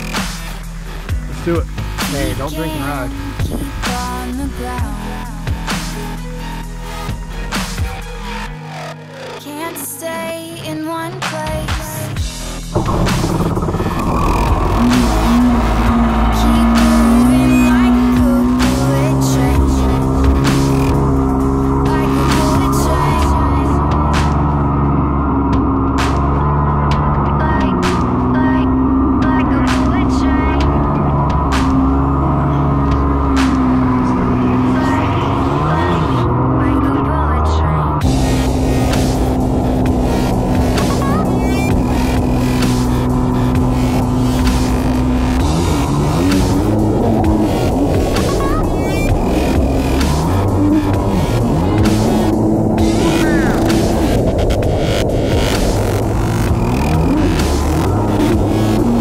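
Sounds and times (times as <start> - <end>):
electronic music with throbbing beat: 0.0 - 59.0.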